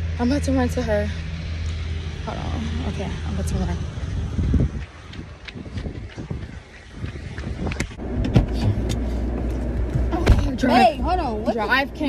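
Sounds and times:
steady low hum: 0:00.0 - 0:12.0
wind buffeting microphone: 0:00.2 - 0:12.0
running footsteps: 0:03.9 - 0:10.2.

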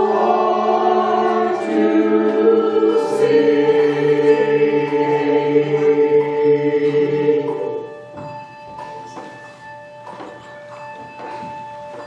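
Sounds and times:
handbells ringing: 0:03.7 - 0:12.0.

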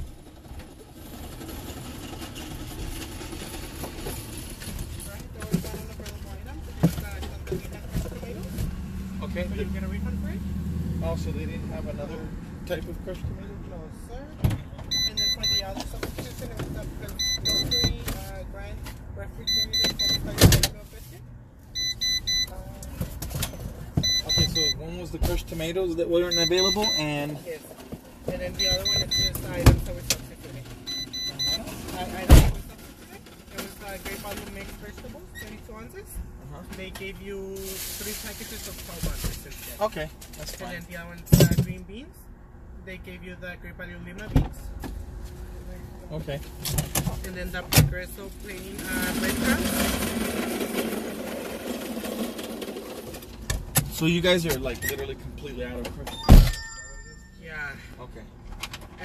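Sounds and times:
electronic beeping: 0:14.9 - 0:15.8, 0:17.1 - 0:18.0, 0:19.5 - 0:20.4, 0:21.8 - 0:22.6, 0:24.0 - 0:24.8, 0:26.3 - 0:27.2, 0:28.6 - 0:29.6, 0:30.9 - 0:31.8.

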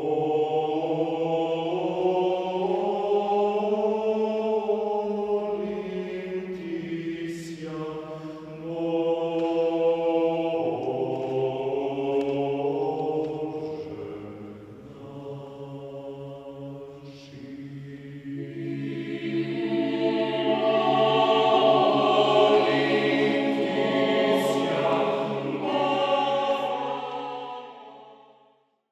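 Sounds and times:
church choir chanting: 0:00.0 - 0:28.7.

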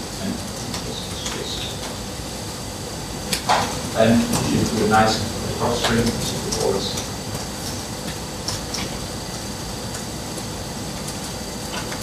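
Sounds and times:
room noise hum: 0:00.0 - 0:12.0.

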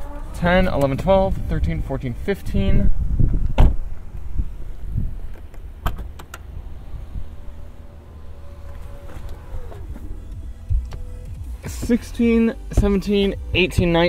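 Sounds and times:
tailgate motor whirring: 0:05.2 - 0:11.6
low rumble: 0:06.4 - 0:12.4.

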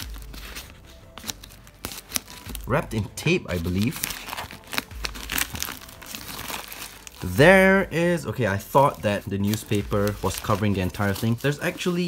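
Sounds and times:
plastic and paper crinkling: 0:00.0 - 0:12.0.

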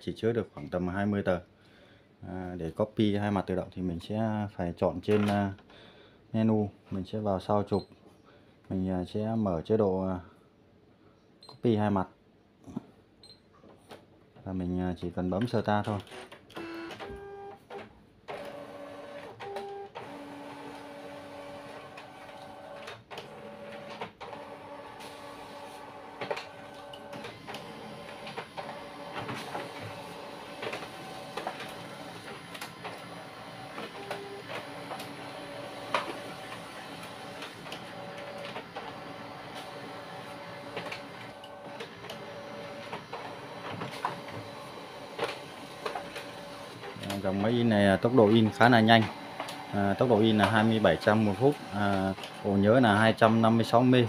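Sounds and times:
printer clicks: 0:15.4 - 0:53.6
printer motor whir: 0:16.0 - 0:54.0.

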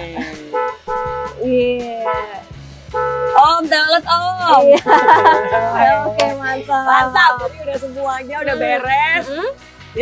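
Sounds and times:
background music with bass line: 0:00.0 - 0:10.0
novelty car horn meowing: 0:00.5 - 0:03.6, 0:04.9 - 0:06.2.

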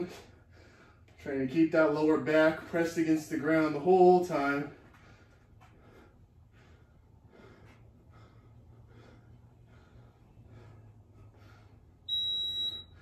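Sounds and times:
man breathing quickly: 0:00.0 - 0:01.2, 0:04.7 - 0:12.1
high-pitched electronic beep: 0:12.1 - 0:12.9.

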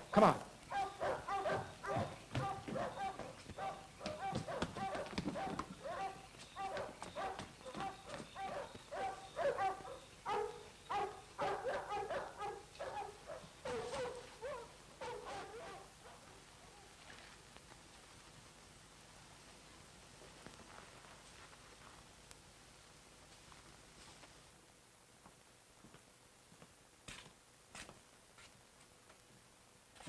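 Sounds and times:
dog barking: 0:00.7 - 0:16.4.

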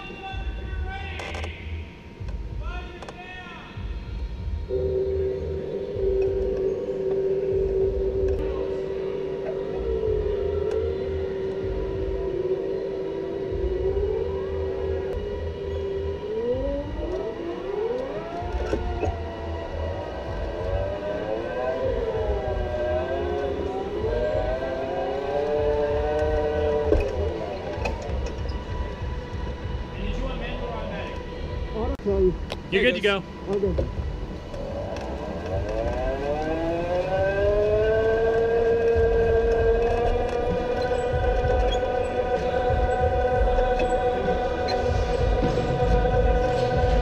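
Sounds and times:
electric go-kart motors whining: 0:04.6 - 0:47.0.

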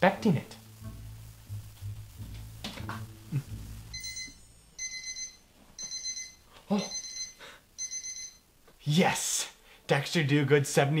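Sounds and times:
high-pitched alarm beeps: 0:03.9 - 0:08.4.

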